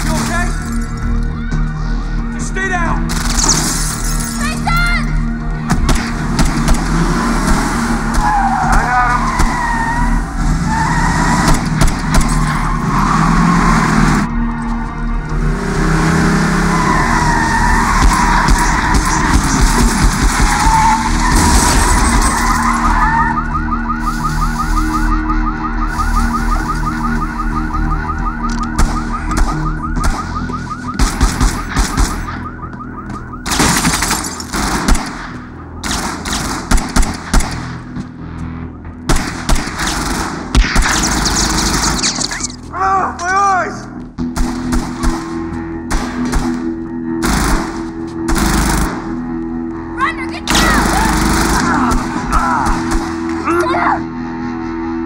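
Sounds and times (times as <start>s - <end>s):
car engines: 0.0s - 55.0s
wavering high squealing tones: 16.6s - 25.2s, 41.4s - 42.7s.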